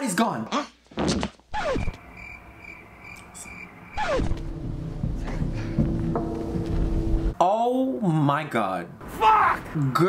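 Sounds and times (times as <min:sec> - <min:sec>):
crickets chirping: 0:01.6 - 0:04.9.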